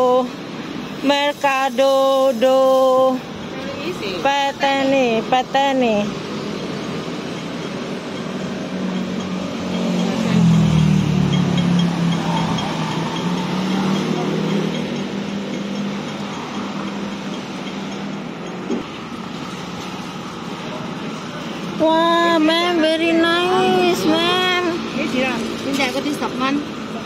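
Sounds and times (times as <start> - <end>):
traffic rushing: 0.0 - 27.0
vehicle engine passing: 3.5 - 22.0.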